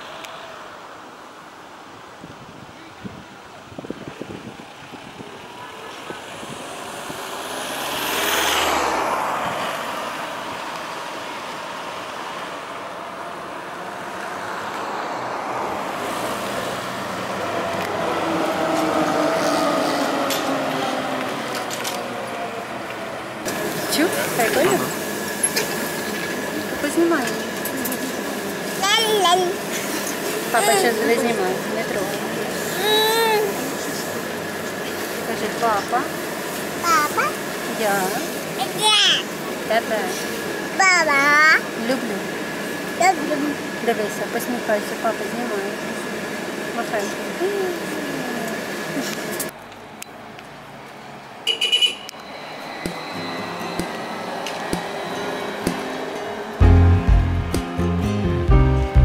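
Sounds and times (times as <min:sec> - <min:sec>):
trolleybus passing: 0:00.0 - 0:59.0
small child babbling: 0:32.7 - 0:33.7, 0:36.8 - 0:37.4, 0:38.6 - 0:39.3.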